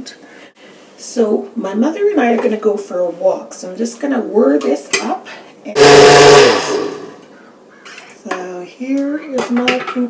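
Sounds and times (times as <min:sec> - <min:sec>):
electric blender running: 0:05.8 - 0:07.2.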